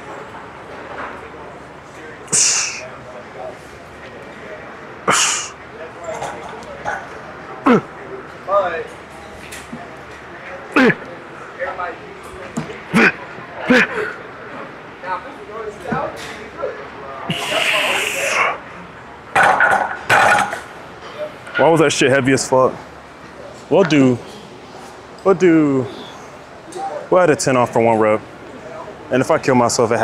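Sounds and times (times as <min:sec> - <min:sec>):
man grunting: 0:02.3 - 0:02.8, 0:07.6 - 0:07.9, 0:10.7 - 0:11.1, 0:12.9 - 0:14.2.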